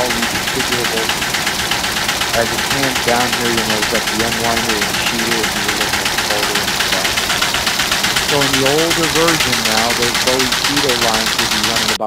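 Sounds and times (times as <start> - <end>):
fast rhythmic machine clicks: 0.0 - 12.0
folding machine running: 0.0 - 12.0.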